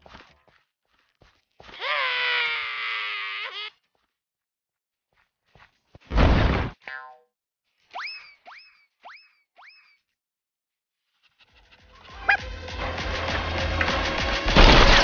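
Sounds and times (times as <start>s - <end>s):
background music: 11.8s - 15.0s.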